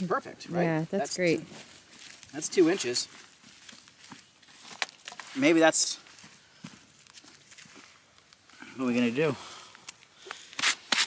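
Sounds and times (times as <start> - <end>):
scuffing and crunching of dry soil: 0.9 - 9.4.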